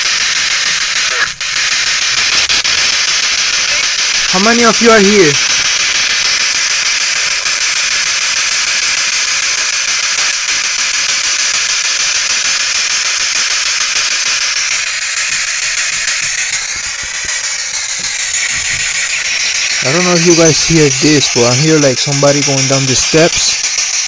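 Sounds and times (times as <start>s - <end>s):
radio static hiss: 0.0s - 24.0s.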